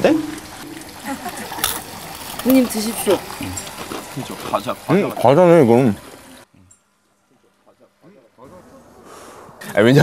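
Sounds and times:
background hiss: 0.0s - 10.0s
soft conversation: 1.0s - 10.0s.

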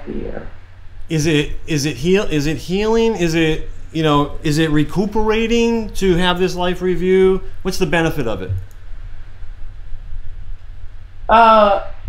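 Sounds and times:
faint hiss: 0.0s - 11.5s.

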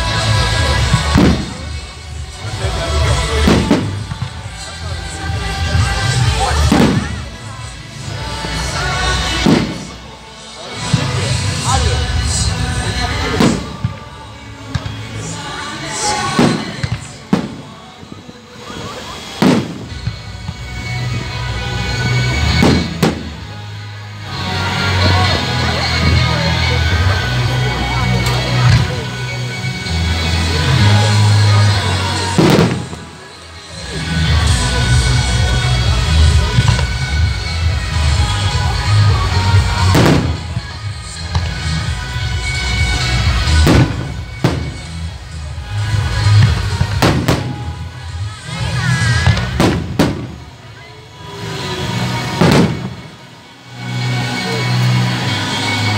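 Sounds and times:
fireworks bursting with echo: 0.0s - 55.9s
music: 0.0s - 55.9s.

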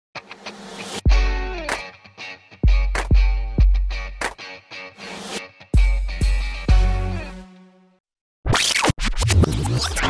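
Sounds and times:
record-scratch rewind effect: 8.5s - 10.0s.

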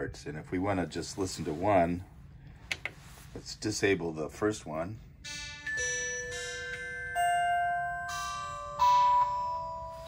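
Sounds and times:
synthesizer bell notes: 5.2s - 10.0s.

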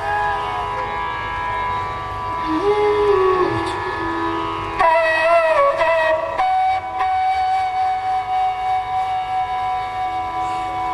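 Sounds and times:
flute holding long note: 0.0s - 10.9s
tanpura drone: 0.0s - 10.9s.

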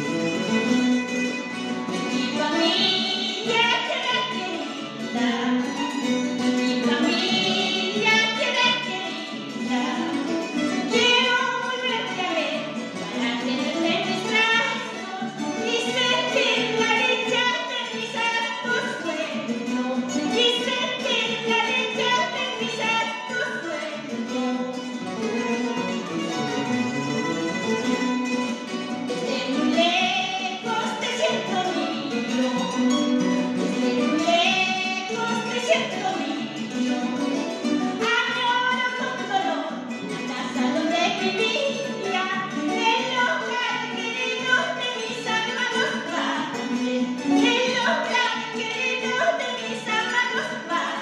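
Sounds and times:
guitar accompaniment: 0.0s - 51.0s
woman singing: 1.9s - 24.9s, 29.0s - 51.0s.

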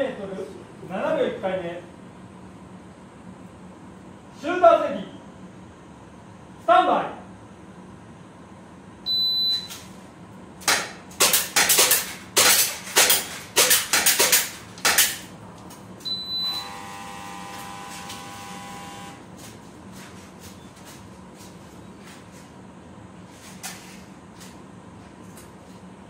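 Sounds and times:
shot timer beep: 9.1s - 9.7s, 16.0s - 16.8s
steady hum: 10.0s - 26.0s
airsoft pistol shots: 10.6s - 15.2s
pellets striking plate targets: 10.6s - 15.2s.

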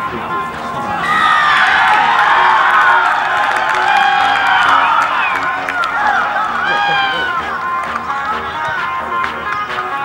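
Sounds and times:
man calling out: 6.6s - 7.5s.

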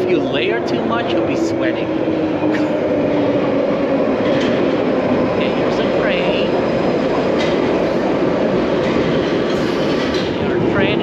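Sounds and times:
train pulling into platform: 0.0s - 11.0s.

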